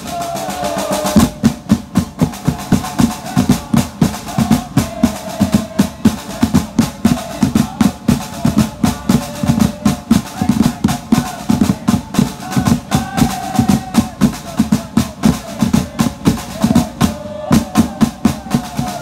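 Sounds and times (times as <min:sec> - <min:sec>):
drum band playing fast rhythm: 0:00.0 - 0:19.0.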